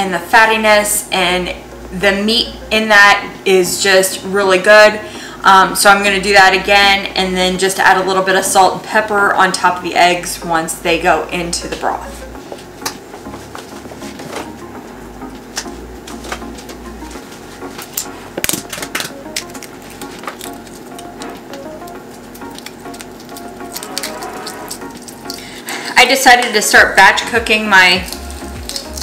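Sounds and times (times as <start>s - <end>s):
eggshell crackling and clicking: 18.0s - 25.5s, 27.8s - 29.0s.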